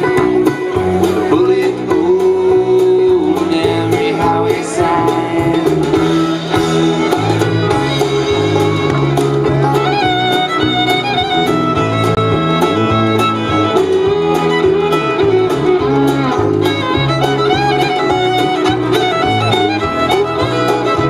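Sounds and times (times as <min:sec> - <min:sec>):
acoustic guitar: 0:00.0 - 0:21.0
banjo: 0:00.0 - 0:21.0
drums keeping a beat: 0:00.0 - 0:21.0
fiddle melody: 0:00.0 - 0:21.0
upright bass: 0:00.0 - 0:21.0.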